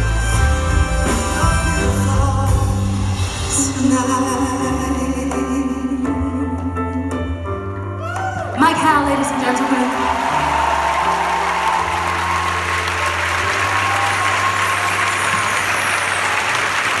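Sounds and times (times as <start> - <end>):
audience applauding: 8.0 - 17.0.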